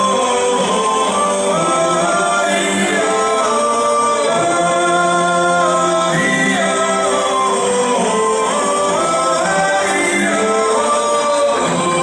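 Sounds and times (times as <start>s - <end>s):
choir singing in chords: 0.0s - 12.0s.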